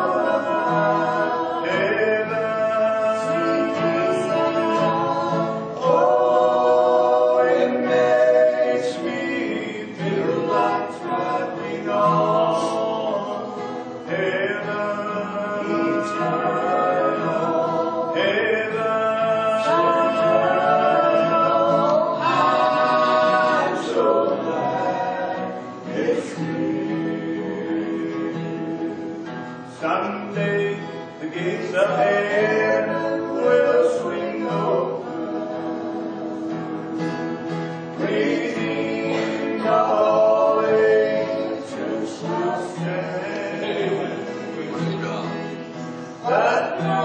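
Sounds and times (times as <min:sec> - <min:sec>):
group of voices singing in harmony: 0:00.0 - 0:47.0.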